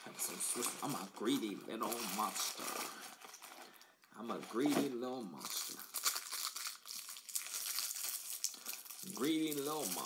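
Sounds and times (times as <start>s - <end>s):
plastic wrapper crinkling: 0.1s - 10.0s.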